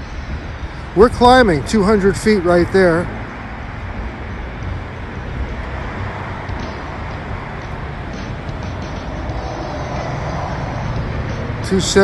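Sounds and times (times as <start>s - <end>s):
steady rumbling background noise: 0.0s - 12.0s.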